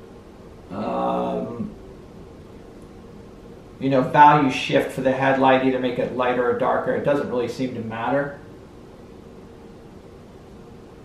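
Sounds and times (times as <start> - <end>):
faint hum: 0.0 - 11.0
low hiss: 0.0 - 11.0.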